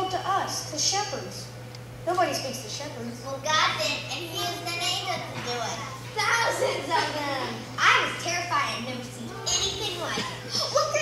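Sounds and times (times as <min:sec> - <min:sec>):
steady low hum: 0:00.0 - 0:11.0
child speaking: 0:02.1 - 0:11.0.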